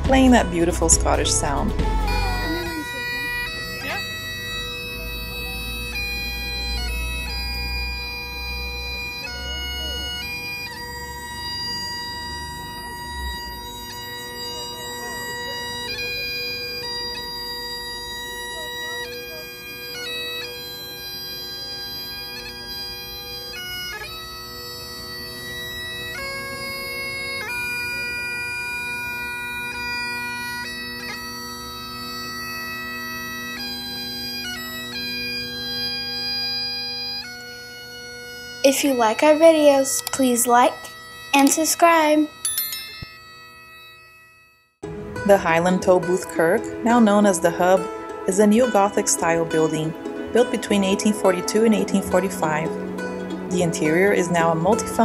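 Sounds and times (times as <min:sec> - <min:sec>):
bagpipe playing: 0:00.0 - 0:55.0.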